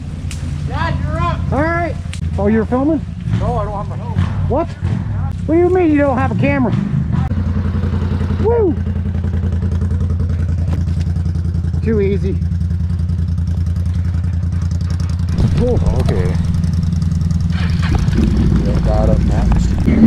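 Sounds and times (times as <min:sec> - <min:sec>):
atv engine running steadily: 0:00.0 - 0:20.0.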